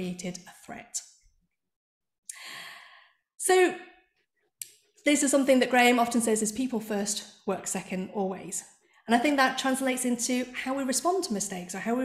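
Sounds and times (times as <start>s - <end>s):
woman breathing in: 2.3s - 3.3s.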